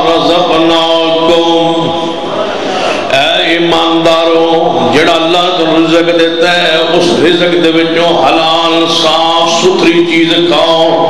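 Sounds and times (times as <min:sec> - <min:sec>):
man chanting into a microphone: 0:00.0 - 0:02.2, 0:02.9 - 0:11.0.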